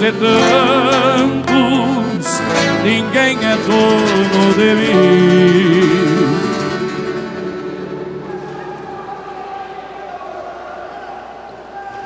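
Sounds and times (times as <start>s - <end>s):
guitar folk music: 0.0s - 9.5s
sustained tones: 0.3s - 8.9s.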